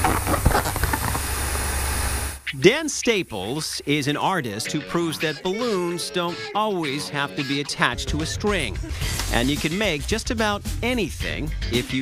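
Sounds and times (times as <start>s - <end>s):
balloon rubber handling: 0.0s - 1.7s.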